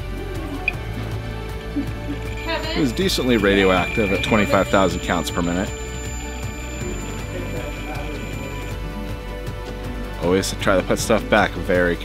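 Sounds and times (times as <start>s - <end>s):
background music over sound system: 0.0s - 10.1s.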